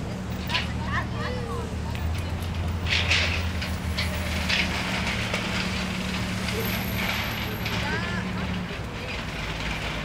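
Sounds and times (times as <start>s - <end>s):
large engine idling: 0.0s - 10.0s.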